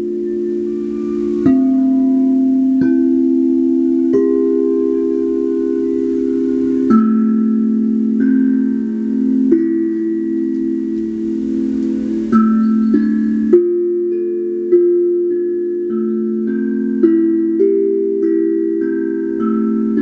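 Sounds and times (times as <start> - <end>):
singing bowls ringing: 0.0 - 20.0
steel tongue drum notes: 0.0 - 20.0.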